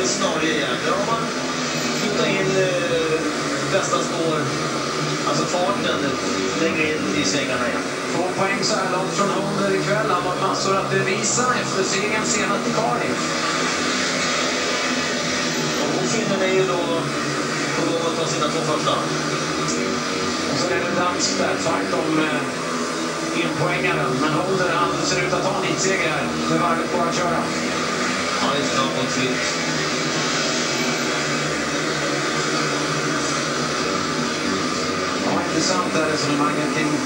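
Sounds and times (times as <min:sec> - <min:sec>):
motorcycle engines racing: 0:00.0 - 0:37.0.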